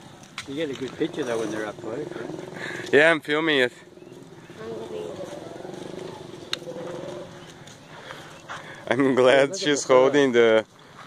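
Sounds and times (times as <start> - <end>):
people talking quietly: 0.4 - 10.8.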